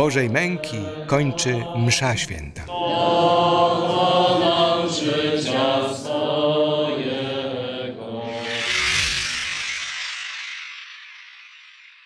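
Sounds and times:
voices singing a chant: 0.0s - 8.8s
rushing noise: 8.0s - 12.0s.

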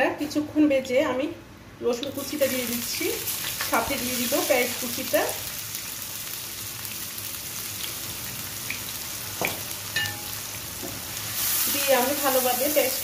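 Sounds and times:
garlic sizzling in hot oil: 2.0s - 13.0s.

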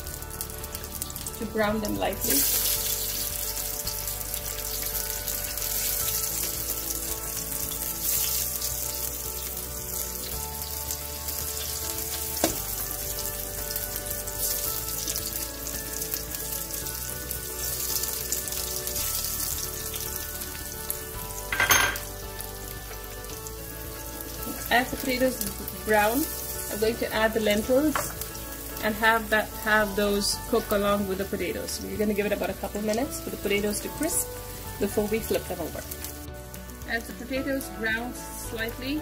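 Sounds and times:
potatoes sizzling in hot oil: 0.0s - 39.0s.

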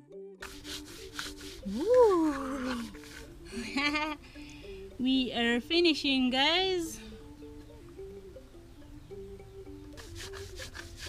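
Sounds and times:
plucked-string background music: 0.0s - 11.0s
woman exclaiming: 1.7s - 2.9s
stone scraping on grinding slab: 10.0s - 11.0s.

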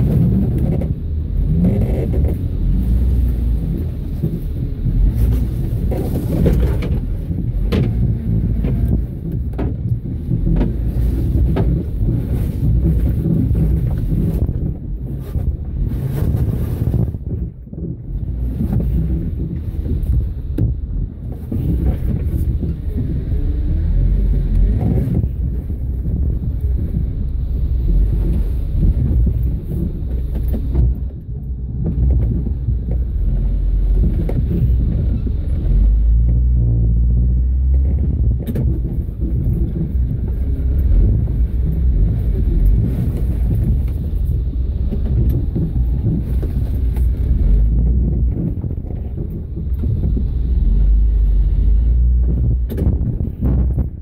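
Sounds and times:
off-road vehicle engine revving: 0.0s - 9.4s, 21.5s - 31.0s, 31.9s - 53.8s.

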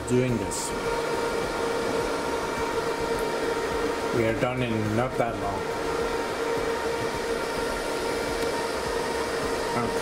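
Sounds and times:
server cooling fans whirring: 0.0s - 10.0s.

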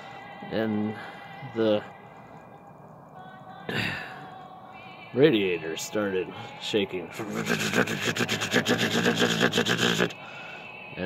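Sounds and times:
man making rattling buzzing noise: 7.2s - 10.1s.

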